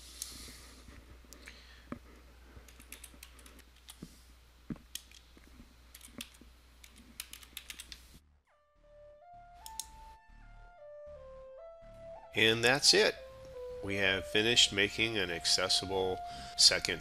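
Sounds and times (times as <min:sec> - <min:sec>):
low steady hum: 0:00.0 - 0:17.0
keyboard key clicks: 0:06.0 - 0:08.0
simple electronic melody: 0:08.5 - 0:17.0.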